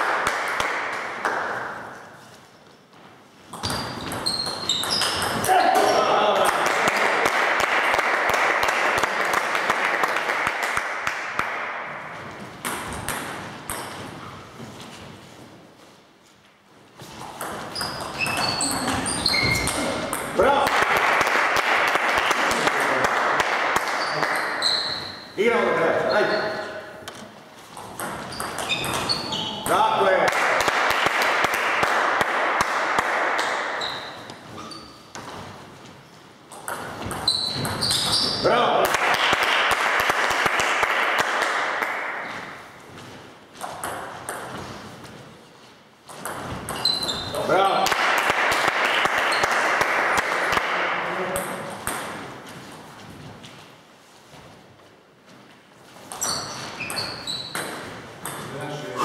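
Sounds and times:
spectators clapping: 0.0s - 1.8s, 6.4s - 11.8s, 20.6s - 24.5s, 30.2s - 33.6s, 38.8s - 42.2s, 47.8s - 50.9s
table tennis ball bouncing: 3.5s - 6.0s, 11.3s - 14.2s, 17.2s - 20.7s, 27.8s - 29.8s, 36.5s - 38.4s, 43.6s - 44.8s, 46.1s - 47.3s, 48.3s - 52.4s, 56.1s - 58.5s.

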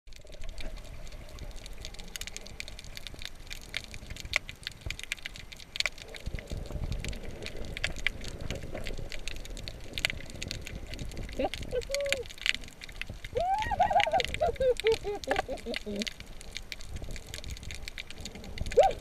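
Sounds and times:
sharp clicks and crackles: 0.1s - 19.0s
muffled underwater noise: 5.9s - 19.0s.

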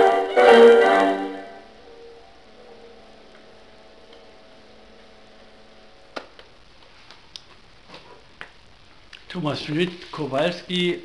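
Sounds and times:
held low string note: 0.0s - 3.0s.

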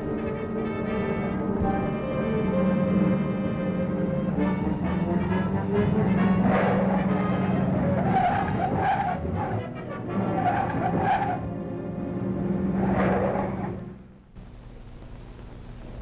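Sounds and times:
orchestral score: 0.0s - 14.1s
car driving fast: 4.3s - 14.1s
tyres squealing: 4.8s - 11.7s.

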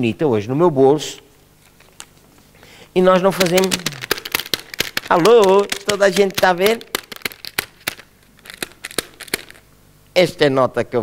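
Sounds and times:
paper banknote crinkling: 3.0s - 9.7s.

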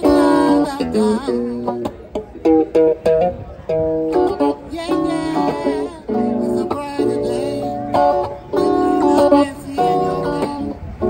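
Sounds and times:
electric guitar playing: 0.0s - 11.0s.

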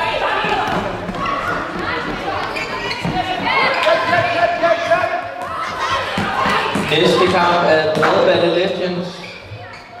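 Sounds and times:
ball bouncing on hall floor: 0.1s - 8.5s.

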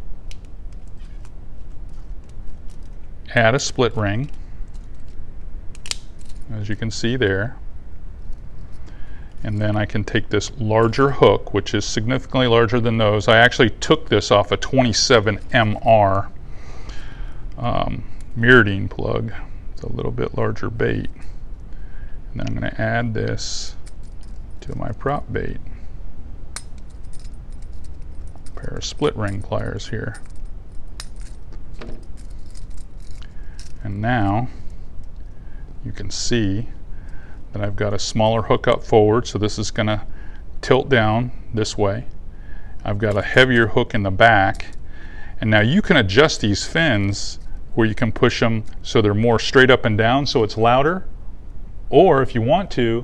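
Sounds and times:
steady low hum: 0.0s - 53.0s
pliers metal clicks: 5.7s - 6.4s
pliers clinking on metal ring: 26.6s - 33.8s.

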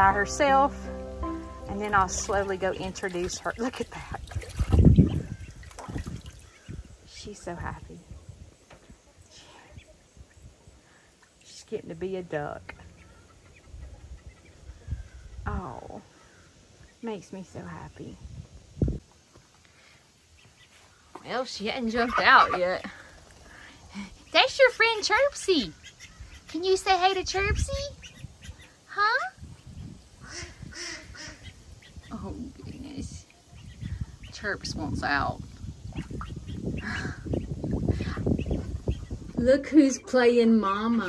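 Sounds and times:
low rumble: 0.0s - 5.0s
poultry clucking and peeping: 12.5s - 15.5s, 20.3s - 23.4s, 24.2s - 28.8s, 29.5s - 41.0s
ducks calling: 12.7s - 15.4s, 20.3s - 28.8s, 30.2s - 32.8s.

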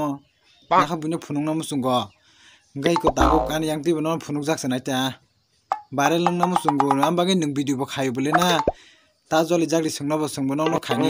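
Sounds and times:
man talking: 2.8s - 5.2s, 6.0s - 8.7s, 9.3s - 11.0s.

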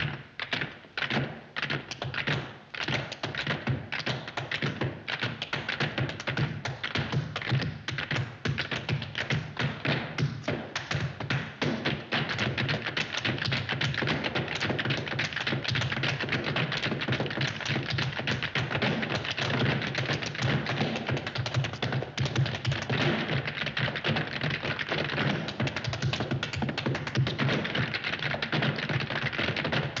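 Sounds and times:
tap shoes on hard floor: 0.6s - 30.0s.

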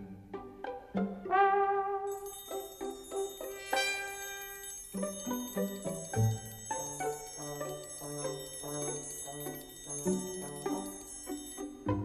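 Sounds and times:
silent film music: 0.0s - 12.0s.

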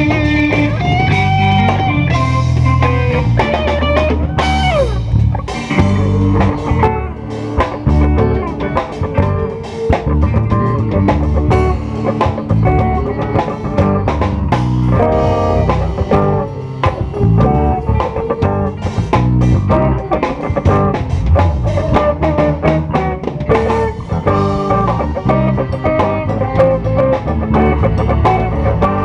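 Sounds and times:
live band playing worship song: 0.0s - 29.0s
prominent bass line: 0.0s - 29.0s
steady drum beat: 0.0s - 29.0s.

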